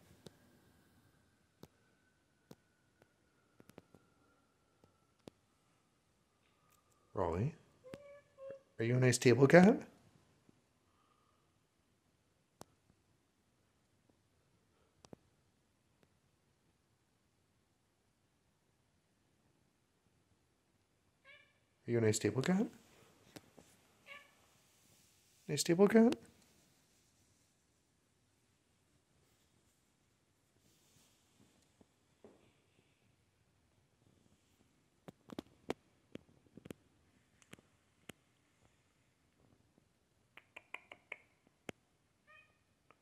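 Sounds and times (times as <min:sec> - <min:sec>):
cat meowing faintly: 0:07.8 - 0:08.8, 0:24.0 - 0:24.4, 0:42.2 - 0:42.8
cat mewing: 0:24.0 - 0:24.4.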